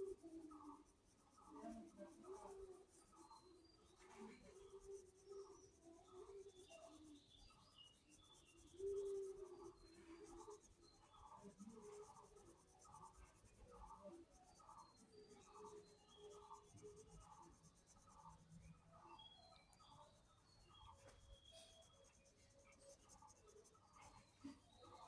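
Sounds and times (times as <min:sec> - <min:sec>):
pencil shading on paper: 0:00.0 - 0:25.0.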